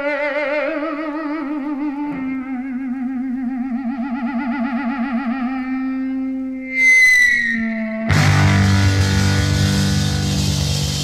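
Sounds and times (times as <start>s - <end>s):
sustained rock note with vibrato: 6.7s - 11.0s.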